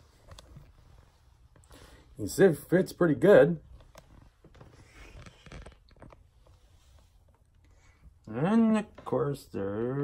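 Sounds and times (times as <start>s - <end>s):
faint handling rustles and ticks: 0.0s - 9.7s.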